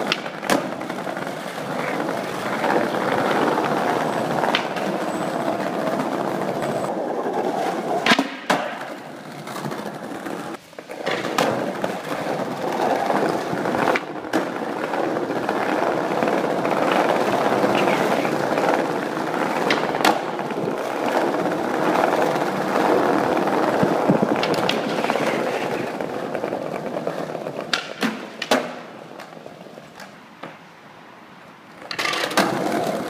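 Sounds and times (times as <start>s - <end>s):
skateboard clacking on ground: 0.0s - 30.7s, 31.7s - 33.0s
skateboard wheels rolling on pavement: 0.0s - 33.0s.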